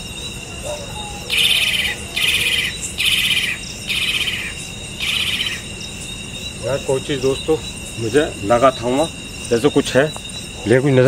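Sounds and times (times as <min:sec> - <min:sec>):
animal buzzy trill calls: 0:00.0 - 0:11.0
crickets droning: 0:00.0 - 0:11.0.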